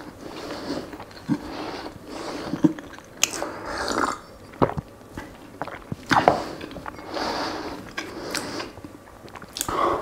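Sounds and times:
person swallowing and gulping: 0.9 - 1.6, 2.4 - 7.1, 7.8 - 9.8
wet mouth clicks: 9.3 - 9.8.

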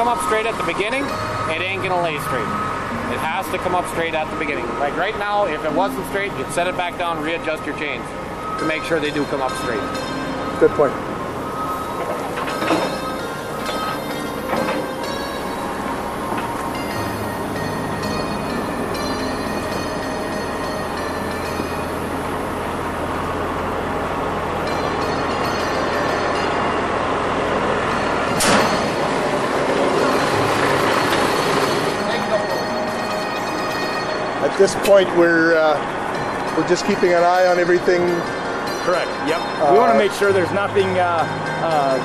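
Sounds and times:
hydraulic deck lifting: 0.0 - 39.6
chains creaking and knocking: 11.8 - 21.9, 27.6 - 40.3
metal clank: 11.9 - 18.4, 28.2 - 32.3.

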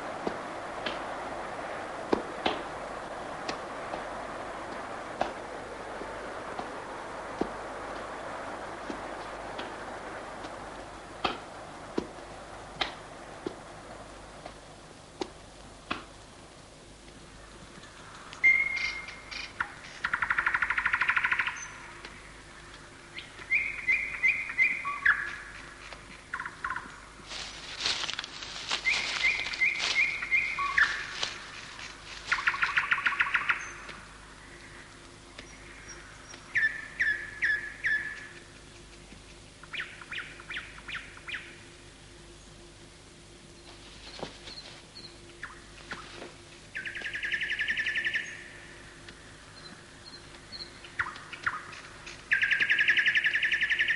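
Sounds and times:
crackling noise: 0.0 - 53.9
birds whistling: 18.4 - 25.5, 28.6 - 34.8, 35.4 - 38.5, 46.7 - 48.9, 49.5 - 53.9
buzzy bird trills: 18.4 - 25.6, 28.7 - 34.8, 35.4 - 41.6, 43.6 - 48.9, 49.5 - 53.9.

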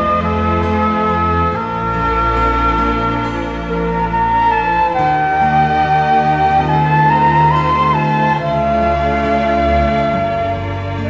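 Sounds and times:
slow sustained background music: 0.0 - 11.0.

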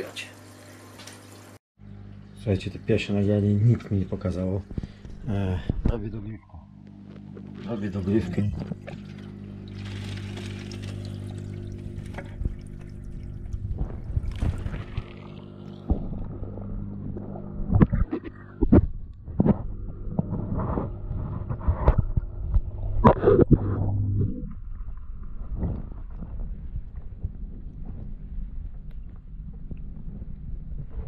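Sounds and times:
aquarium pump humming: 0.0 - 23.0
water splashing and gurgling: 7.9 - 18.9.

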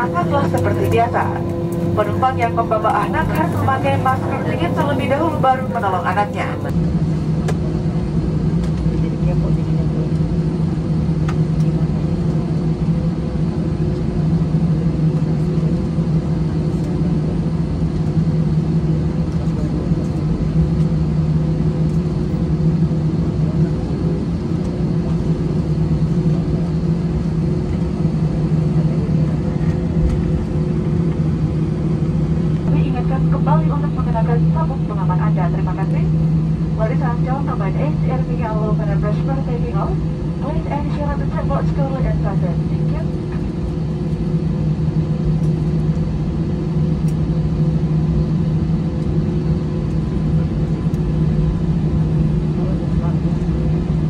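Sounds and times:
cabin air system hum: 0.0 - 54.0
jet engines at taxi power: 0.0 - 54.0.

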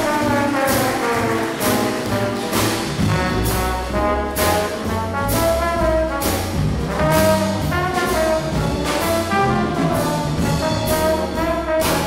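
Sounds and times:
drums: 0.0 - 12.0
piano: 0.0 - 12.0
saxophone and trombone notes: 0.0 - 12.0
upright bass: 0.0 - 12.0.

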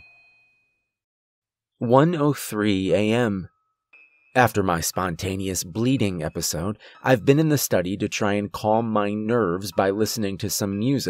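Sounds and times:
thin high ringing tone: 0.0 - 1.0, 3.5 - 6.8
narrator speaking: 1.8 - 3.5, 4.4 - 11.0.

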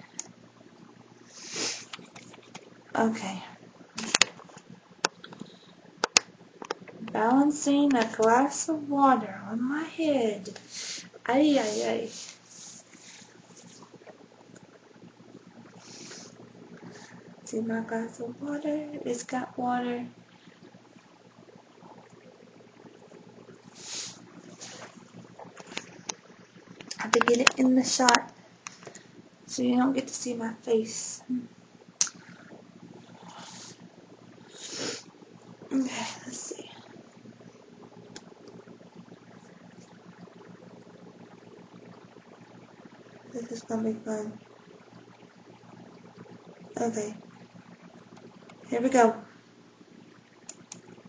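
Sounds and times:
soft rush of air: 10.5 - 14.0, 23.6 - 26.1
soft breath out: 10.7 - 11.1
faint ticks: 20.0 - 34.3, 35.0 - 49.4, 50.1 - 51.0.

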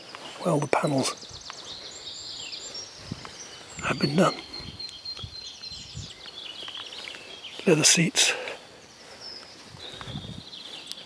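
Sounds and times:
small birds chirping and trilling: 0.0 - 11.0.

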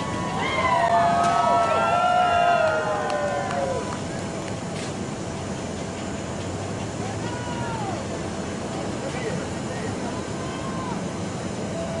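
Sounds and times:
airport ground machinery hum: 0.0 - 12.0.

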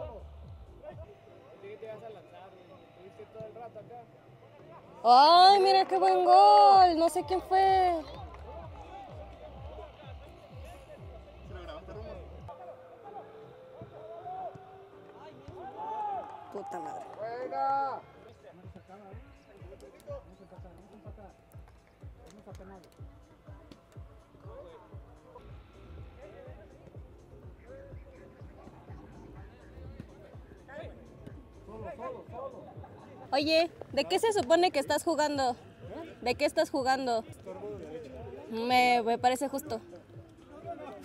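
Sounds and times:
quiet background music: 0.0 - 41.0
players shouting: 13.0 - 18.2.

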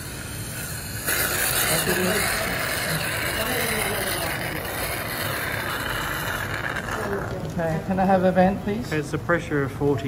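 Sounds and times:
steady hissing noise: 0.0 - 10.0
person speaking: 1.4 - 4.8.

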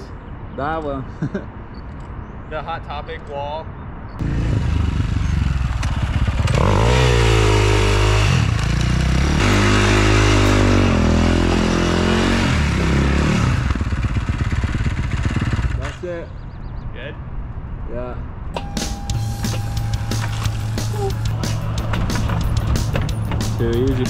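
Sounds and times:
dirt bike engine revving: 4.2 - 15.8.

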